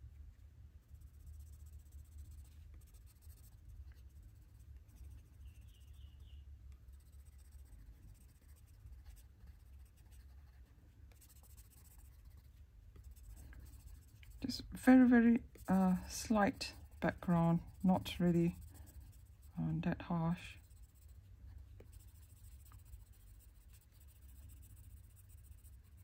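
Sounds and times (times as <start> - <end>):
coloured pencil scratching on paper: 0.8 - 26.0.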